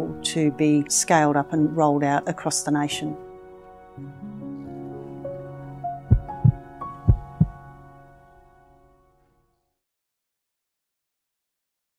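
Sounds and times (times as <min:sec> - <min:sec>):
deep thuds: 0:06.1 - 0:07.6.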